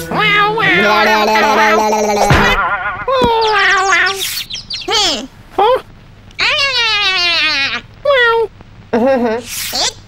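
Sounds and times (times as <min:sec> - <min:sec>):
cartoon voice bleat-like whine: 0:00.1 - 0:04.2.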